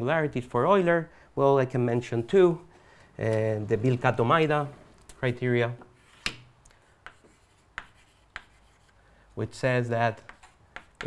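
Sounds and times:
chalk tapping on blackboard: 0:05.9 - 0:09.0, 0:10.2 - 0:11.0
chalk scratching: 0:06.0 - 0:09.0, 0:10.2 - 0:11.0.

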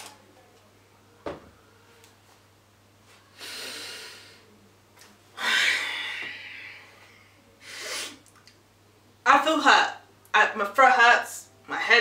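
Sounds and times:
person exhaling through nose: 0:03.4 - 0:04.4, 0:07.6 - 0:08.2.

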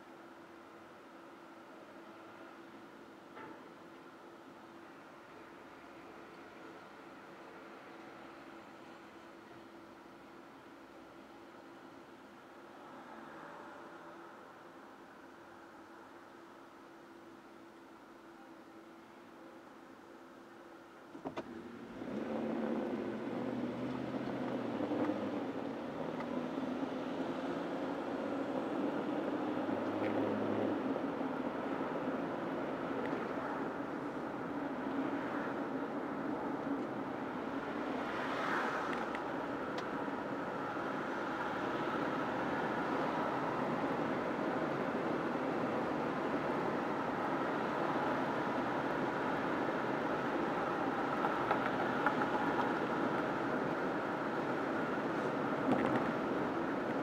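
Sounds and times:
car engine and tyre noise: 0:00.0 - 0:57.0.

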